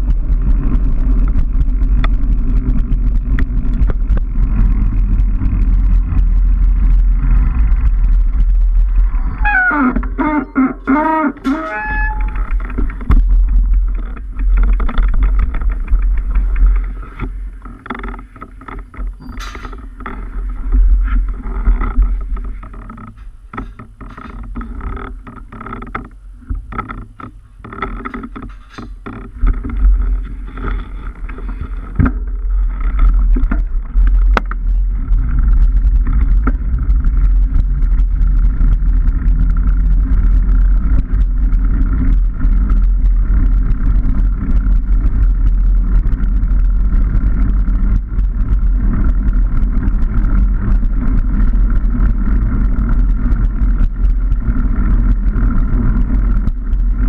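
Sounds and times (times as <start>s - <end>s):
bike clicks and rattles: 0.0s - 57.0s
tyres rolling on rough lane: 0.0s - 57.0s
wind buffeting microphone: 0.0s - 57.0s.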